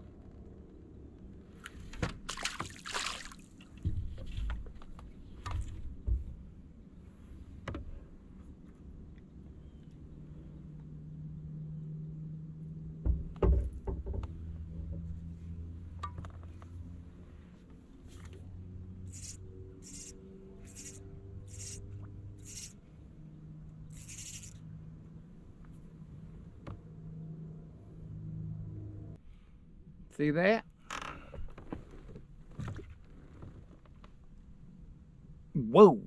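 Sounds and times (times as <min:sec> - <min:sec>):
electric trolling motor humming: 0:19.0 - 0:22.8, 0:23.9 - 0:24.6.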